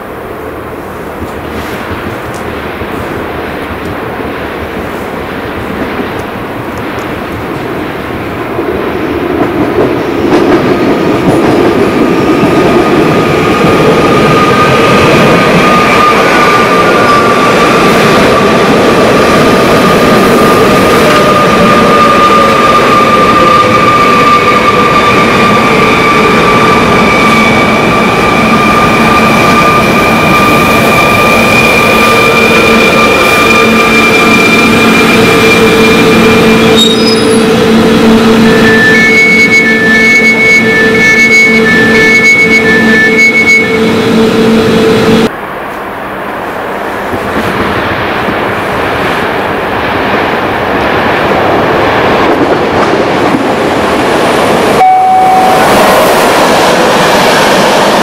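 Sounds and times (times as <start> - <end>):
electric train whining as it brakes: 19.4 - 45.3, 54.8 - 58.0.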